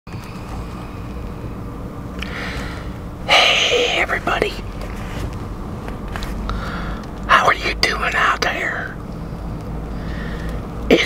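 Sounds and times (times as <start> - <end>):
faint hum: 0.1 - 11.0
low rumble in car cabin: 0.1 - 11.0.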